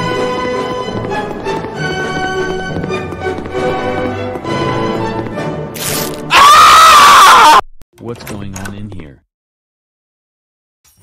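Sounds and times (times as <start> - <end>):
distorted scream of pain: 6.3 - 7.6.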